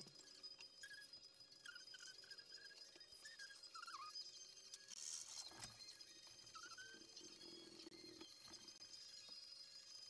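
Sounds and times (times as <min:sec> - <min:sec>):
faint chirp: 0:00.0 - 0:10.0.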